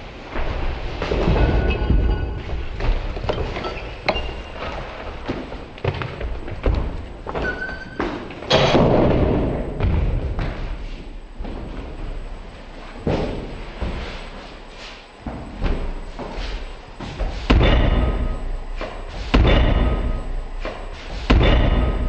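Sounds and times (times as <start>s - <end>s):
heavy thumps and bangs: 17.0s - 22.0s.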